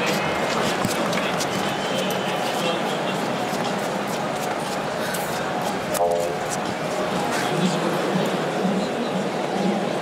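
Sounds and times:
murmur of crowd voices: 0.0s - 10.0s.

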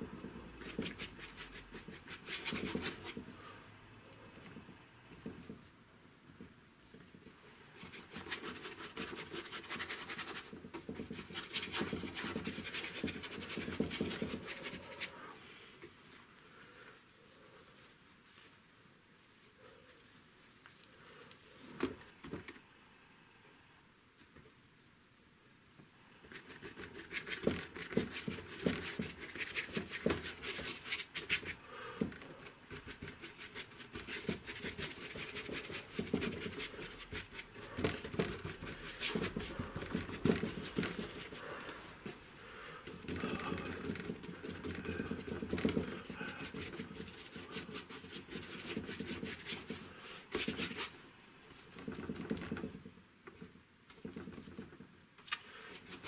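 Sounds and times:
brush scrubbing paint on board: 0.5s - 3.5s, 7.0s - 15.4s, 26.2s - 42.2s, 42.8s - 51.0s.

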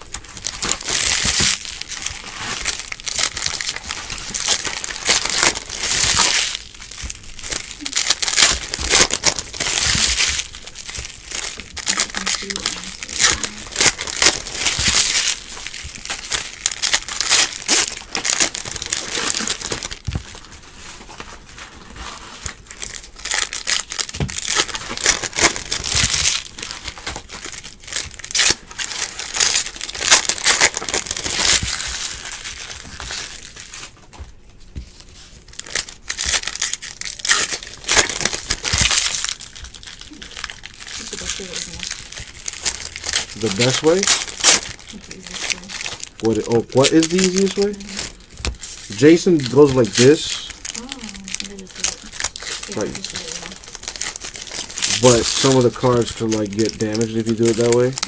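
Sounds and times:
card pack wrappers crinkling: 0.0s - 34.2s, 34.9s - 58.0s.

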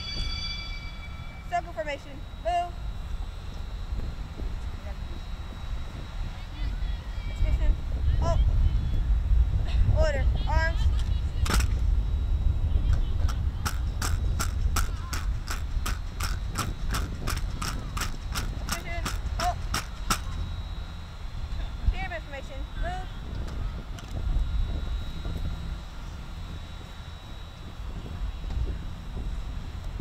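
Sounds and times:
wind rumbling on microphone: 0.0s - 30.0s
sharp rhythmic clicks: 13.3s - 20.4s.

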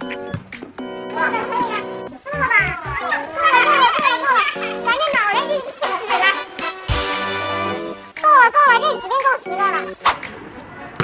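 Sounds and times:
background music: 0.0s - 10.5s.

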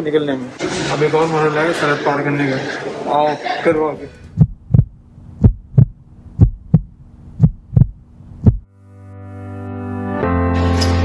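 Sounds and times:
faint steady hum: 3.4s - 8.7s
heartbeat thumps: 4.3s - 8.7s.

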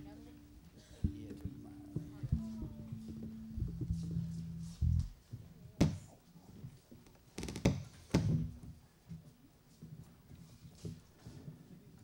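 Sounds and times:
low held instrument notes: 0.0s - 5.6s.

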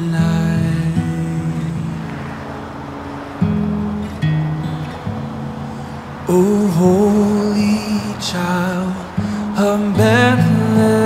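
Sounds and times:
acoustic guitar chord ringing: 0.0s - 11.0s
faint road traffic hiss: 0.0s - 11.0s.

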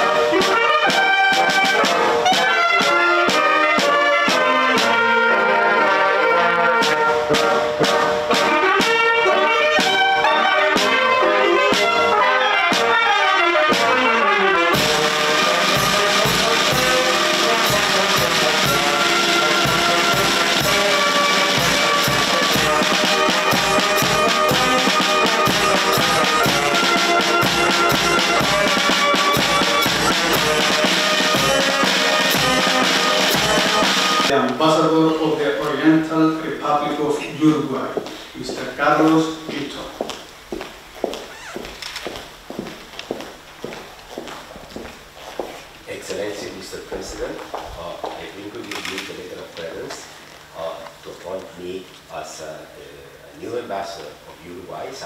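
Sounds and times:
steady drum beat: 0.0s - 5.1s, 6.8s - 13.0s, 13.6s - 34.3s
brass band playing: 0.0s - 37.9s
footsteps on marble floor: 37.8s - 45.8s, 47.2s - 48.3s.

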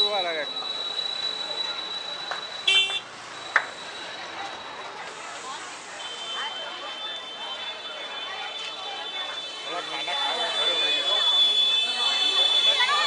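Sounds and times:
crowd chatter: 0.0s - 13.0s
scooter horn beep: 2.5s - 3.8s, 9.2s - 13.0s.

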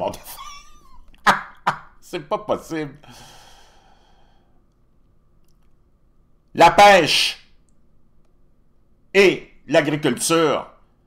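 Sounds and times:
man laughing: 0.1s - 2.0s
man sighing: 3.0s - 4.4s.

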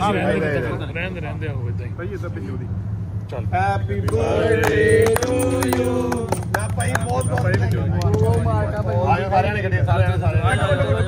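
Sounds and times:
voices singing and calling out: 4.0s - 6.6s
men clapping hands: 4.0s - 8.9s.

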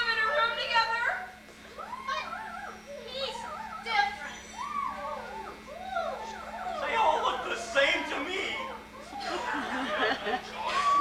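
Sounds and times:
voices making animal-like cries: 1.6s - 11.0s.

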